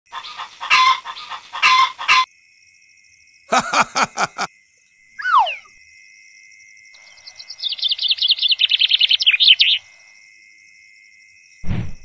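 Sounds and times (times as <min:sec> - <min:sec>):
animal calls: 0:05.2 - 0:05.7.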